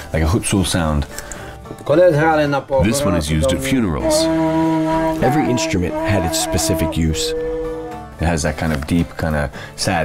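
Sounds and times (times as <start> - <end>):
music: 0.0 - 10.0
man speaking: 2.0 - 4.4, 5.2 - 7.4, 8.2 - 10.0.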